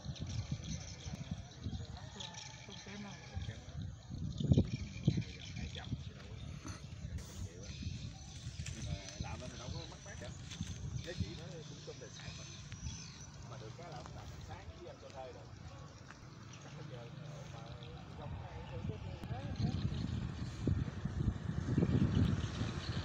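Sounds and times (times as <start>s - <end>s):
indistinct talking: 0.0s - 21.4s.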